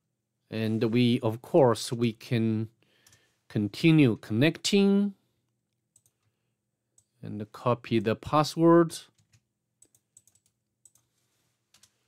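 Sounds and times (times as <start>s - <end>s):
person speaking: 0.5s - 2.8s, 3.5s - 5.2s, 7.2s - 9.2s
computer mouse clicks: 6.0s - 6.3s, 9.2s - 11.1s.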